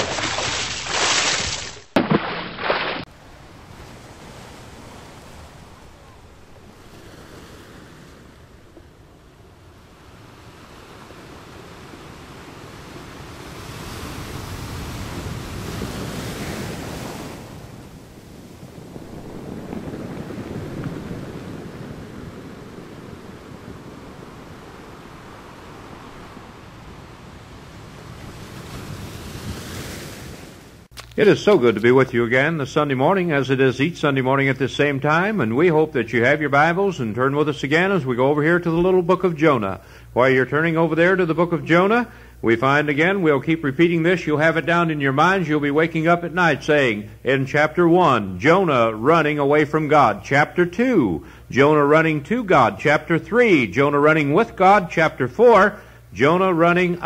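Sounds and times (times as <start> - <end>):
ocean waves washing in: 0.0 - 31.5, 32.1 - 57.0.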